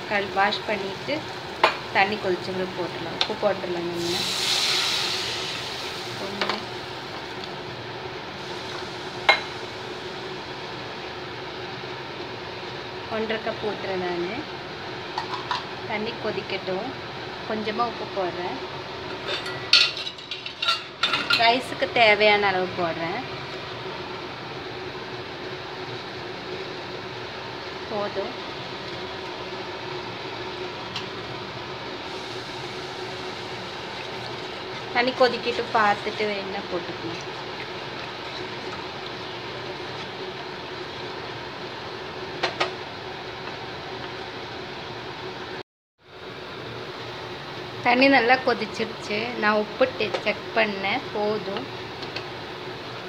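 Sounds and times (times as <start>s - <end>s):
background hum and hiss: 0.0s - 53.0s
utensils clinking on cookware: 19.1s - 21.6s.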